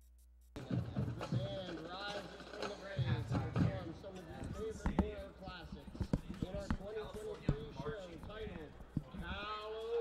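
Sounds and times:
voices chatting: 0.6s - 10.0s.

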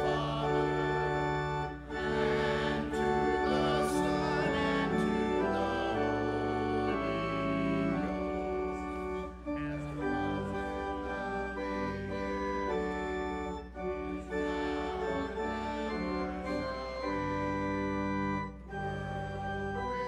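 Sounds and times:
church organ chords: 0.0s - 20.0s.

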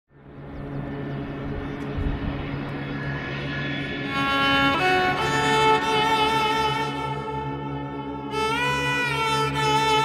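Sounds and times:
higher engine note: 0.2s - 10.0s
jet airliner engines rushing: 0.2s - 10.0s.

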